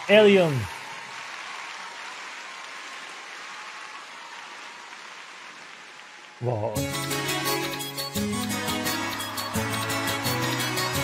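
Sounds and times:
audience applauding: 0.0s - 7.5s, 8.5s - 11.0s.

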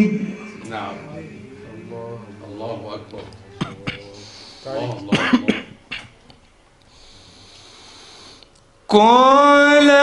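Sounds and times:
man clearing throat: 3.6s - 4.2s, 5.0s - 6.2s
man coughing: 3.6s - 4.2s, 5.0s - 6.2s.

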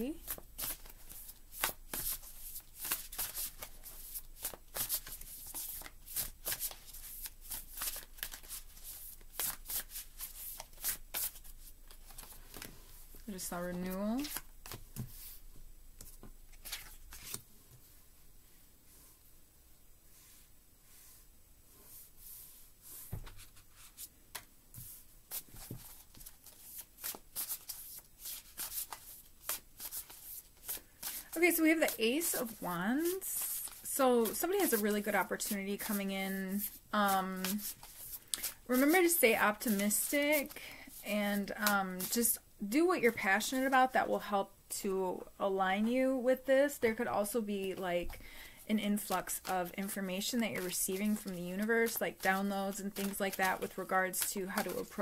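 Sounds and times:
cards being shuffled: 0.2s - 12.8s, 14.2s - 15.4s, 16.0s - 17.4s, 23.1s - 36.8s, 37.4s - 42.1s, 49.0s - 55.0s.

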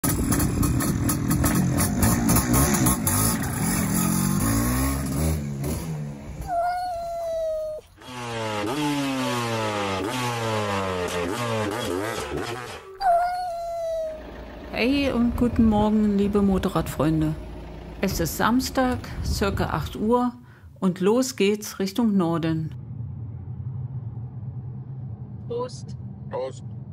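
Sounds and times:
two-stroke engine revving: 0.0s - 6.6s, 7.9s - 20.2s
cat meowing: 6.4s - 7.9s, 13.0s - 14.2s.

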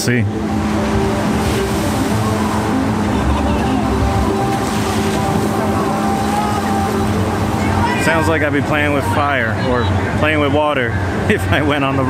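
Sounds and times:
mechanical hum: 0.0s - 12.0s
water spraying and splashing: 0.5s - 8.9s.

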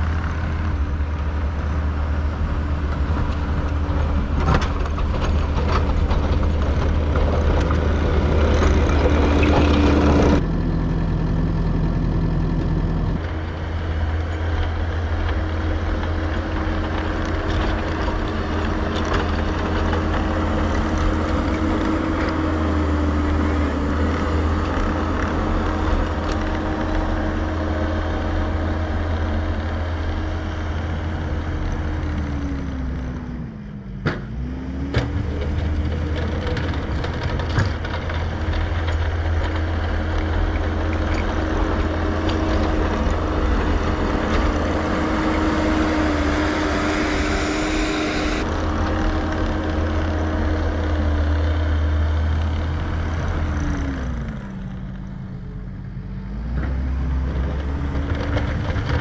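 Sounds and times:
diesel engine running: 0.0s - 59.0s.

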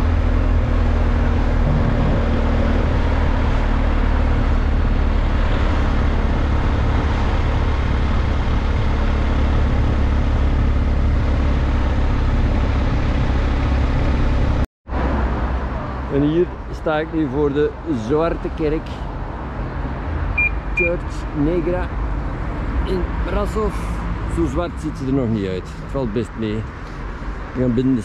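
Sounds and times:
wind noise on microphone: 0.0s - 13.8s
motorcycle engine running: 1.2s - 3.9s.

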